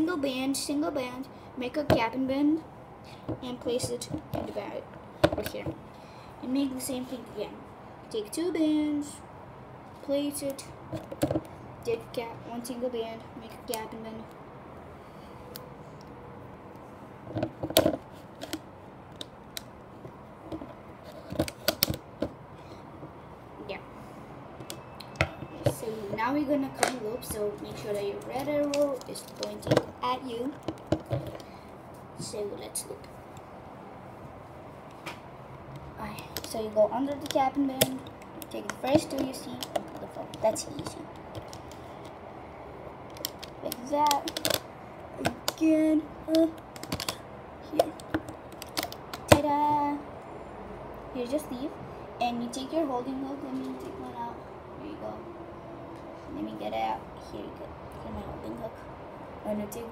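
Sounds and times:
rubber bands snapping on pegs: 0:43.1 - 0:45.6, 0:46.3 - 0:47.2, 0:47.8 - 0:49.5.

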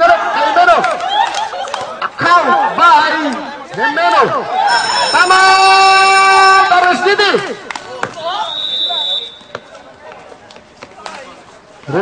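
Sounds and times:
man shouting: 0:03.8 - 0:07.5
basketball court sounds: 0:06.6 - 0:12.0
high whistle tone: 0:08.4 - 0:09.5.

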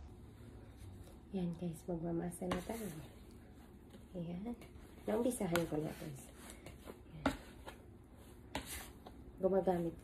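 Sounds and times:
dough scraper scraping: 0:02.4 - 0:03.0, 0:08.4 - 0:09.1.

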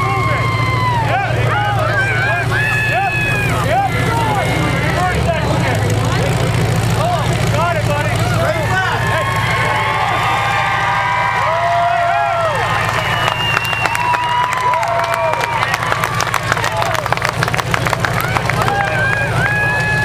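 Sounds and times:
crowd shouting and chatter: 0:00.0 - 0:20.0
truck engines running: 0:00.0 - 0:20.0.

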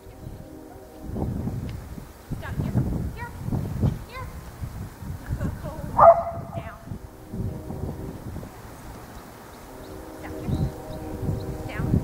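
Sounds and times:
outdoor ambience: 0:00.0 - 0:12.0
dog barking: 0:06.0 - 0:06.6.

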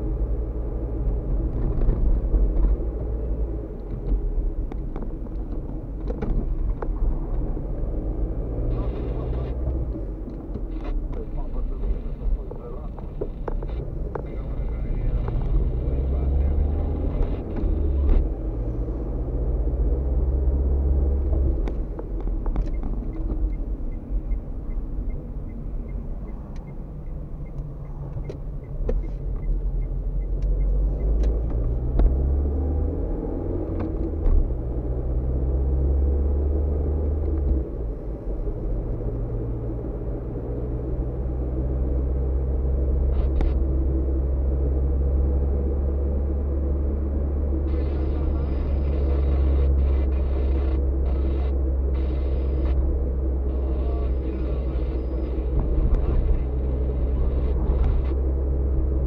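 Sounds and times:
car engine rumble: 0:00.0 - 0:59.0.

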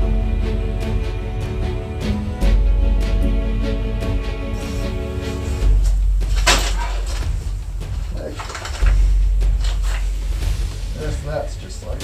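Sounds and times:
background music: 0:00.0 - 0:12.0
low rumble: 0:04.2 - 0:11.9.

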